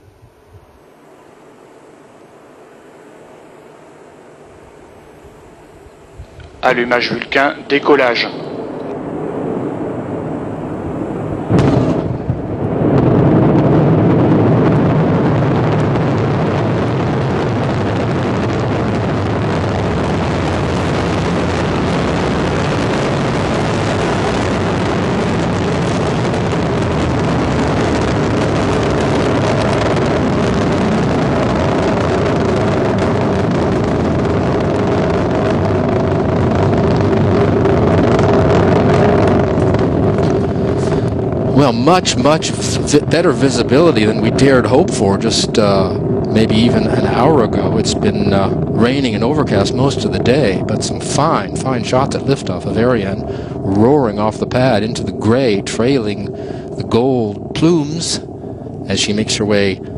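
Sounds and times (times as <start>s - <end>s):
rocket engine roar: 0.0s - 59.9s.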